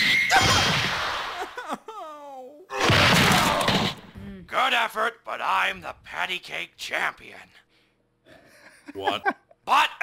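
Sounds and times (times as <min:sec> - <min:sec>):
crackling fight sound effects: 0:00.0 - 0:01.6, 0:02.7 - 0:04.2.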